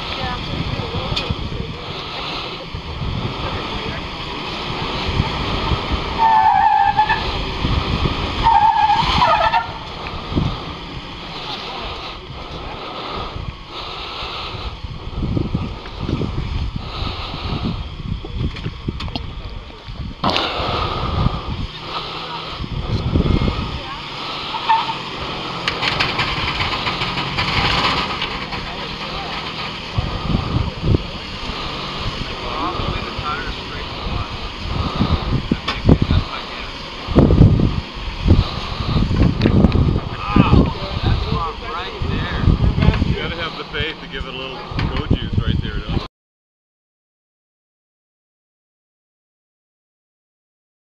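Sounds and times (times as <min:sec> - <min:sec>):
engine revving in bursts: 0:00.0 - 0:17.8, 0:20.2 - 0:45.8
wind on microphone: 0:00.0 - 0:46.1.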